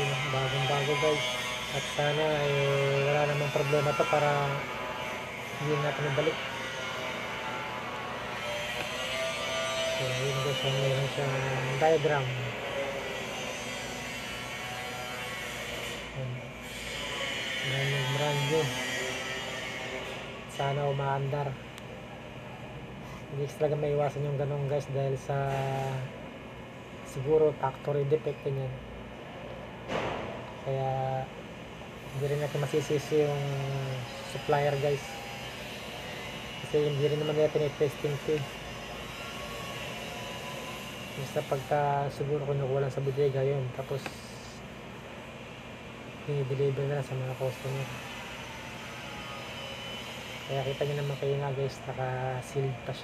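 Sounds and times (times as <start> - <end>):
electrical hum with hiss: 0.0 - 53.0
steady background noise: 0.0 - 53.0.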